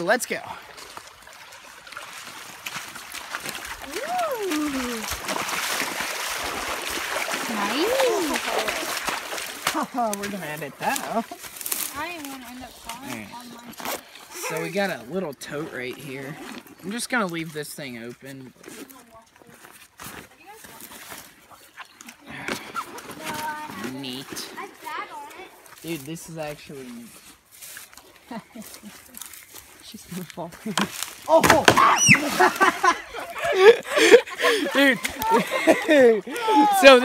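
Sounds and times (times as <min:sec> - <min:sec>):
water splashing around feet: 0:00.0 - 0:37.0
person exclaiming: 0:03.8 - 0:05.1, 0:07.5 - 0:08.9, 0:31.3 - 0:32.3, 0:36.3 - 0:37.0.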